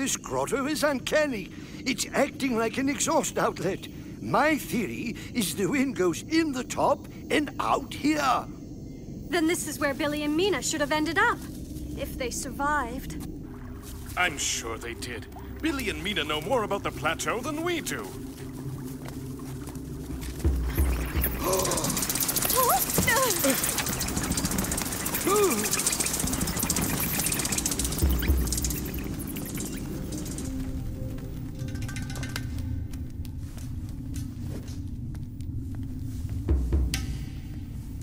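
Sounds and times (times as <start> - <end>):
background music: 11.2 - 34.6.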